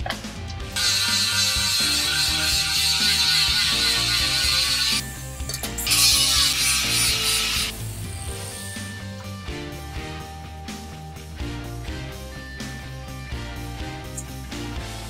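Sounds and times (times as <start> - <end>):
background music: 0.0 - 15.0
angle grinder grinding steel: 0.8 - 9.2.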